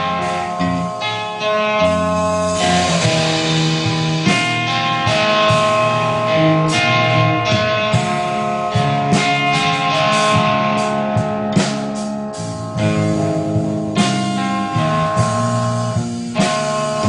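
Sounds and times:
drums and cymbals: 0.0 - 17.0
electric guitars sustained notes: 0.0 - 17.0.

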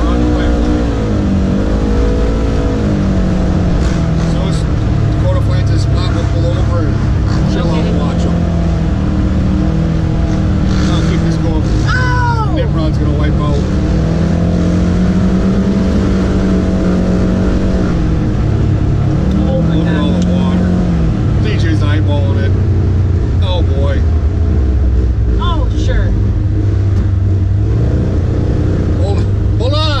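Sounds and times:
vehicle engine running on dirt road: 0.0 - 30.0.

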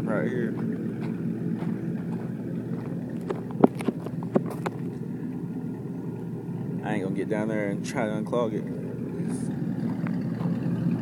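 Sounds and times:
truck engine idling: 0.0 - 11.0.

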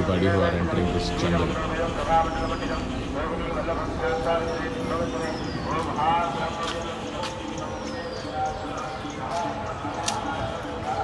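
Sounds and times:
background voices: 0.0 - 11.0
footsteps on dirt trail: 5.4 - 10.4.

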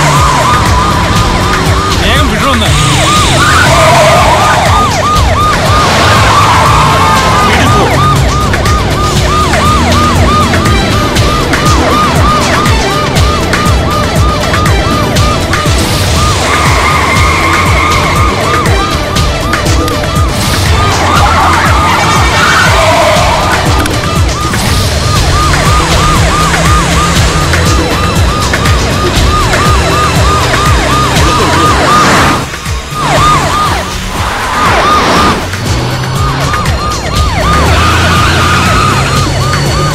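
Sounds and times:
background music: 0.0 - 39.9
film score with heavy beat: 0.0 - 39.9
police siren yelping: 0.0 - 39.9
vehicle engine rumble: 0.0 - 39.9.

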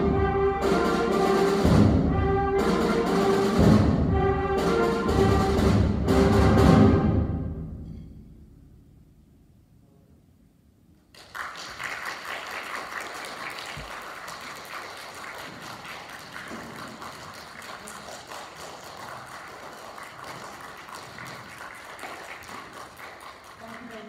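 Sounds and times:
audience applause: 11.1 - 24.0.

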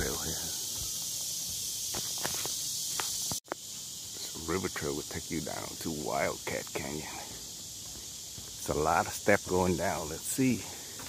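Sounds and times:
steady high hiss: 0.0 - 11.0
footsteps on wooden boardwalk: 7.1 - 9.7, 10.6 - 11.0.

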